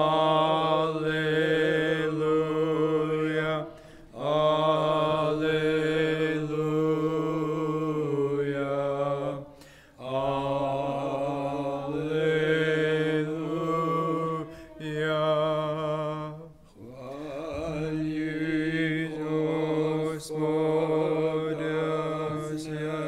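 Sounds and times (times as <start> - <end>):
man chanting a hymn: 0.0 - 23.0
man breathing: 3.7 - 4.2, 9.5 - 10.0, 14.4 - 14.8.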